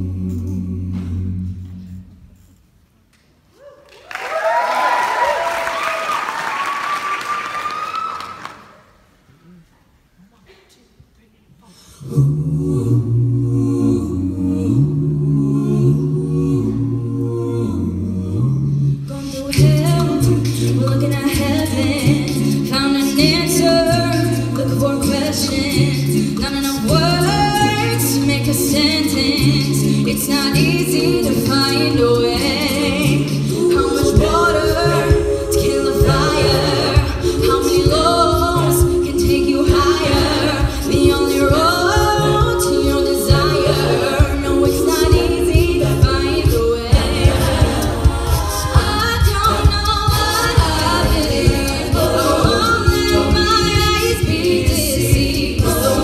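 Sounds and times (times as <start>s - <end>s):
a cappella group singing: 0.0s - 2.5s, 11.7s - 56.0s.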